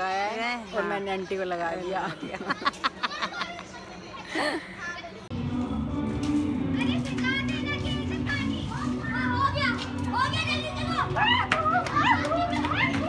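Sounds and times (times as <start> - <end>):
children shouting at play: 7.1 - 13.0.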